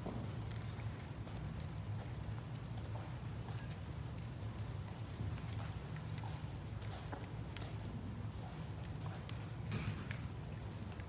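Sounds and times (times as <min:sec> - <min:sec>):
footsteps of people walking: 0:00.0 - 0:11.0.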